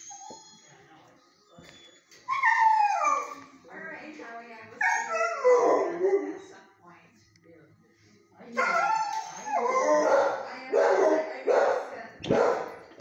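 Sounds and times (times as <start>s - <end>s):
dog howling whines: 2.2s - 3.4s, 8.6s - 10.1s.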